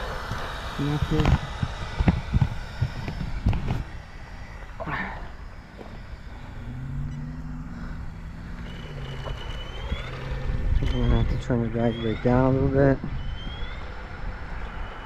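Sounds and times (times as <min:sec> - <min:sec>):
faint high whine: 0:00.0 - 0:15.0
low steady hum: 0:00.0 - 0:15.0.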